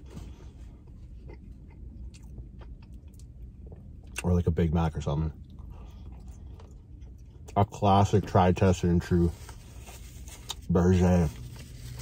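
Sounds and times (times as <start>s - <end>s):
steady low hum: 0.0s - 12.0s
chewing food: 0.7s - 4.2s.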